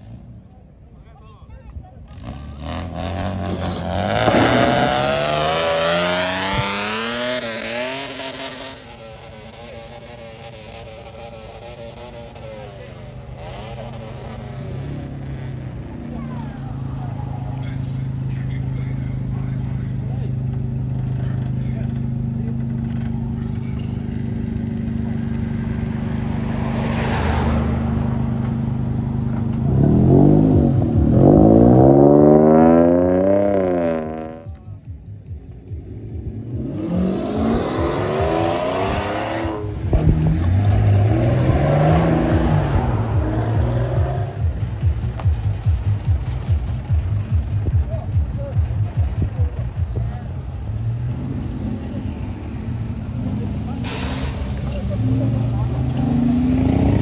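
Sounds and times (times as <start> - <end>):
car engines idling: 0.0 - 57.0
engine revving in blips: 2.1 - 9.0, 25.2 - 34.6, 35.5 - 47.8.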